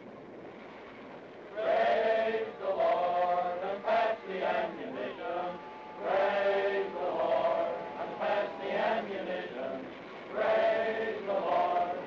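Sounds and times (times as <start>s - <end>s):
men singing in unison: 1.6s - 12.0s.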